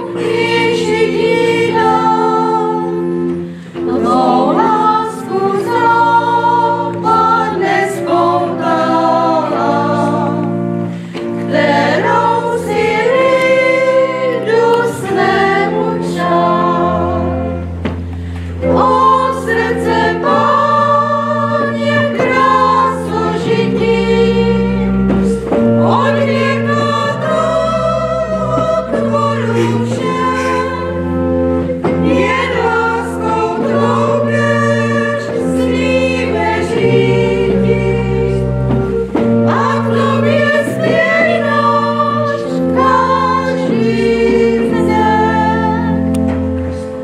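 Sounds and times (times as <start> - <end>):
pipe organ: 0.0 - 47.0
women singing a hymn: 0.0 - 47.0.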